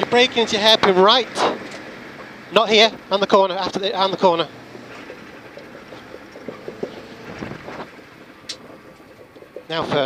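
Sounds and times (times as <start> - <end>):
rally car engine: 0.0 - 10.0
road noise inside car: 0.0 - 10.0
faint knocks: 4.8 - 10.0.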